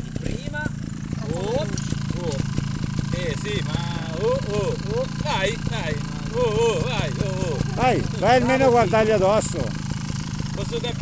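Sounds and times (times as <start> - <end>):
motorcycle engines idling: 0.0 - 11.0
people talking: 0.2 - 2.4, 3.1 - 9.8, 10.6 - 11.0.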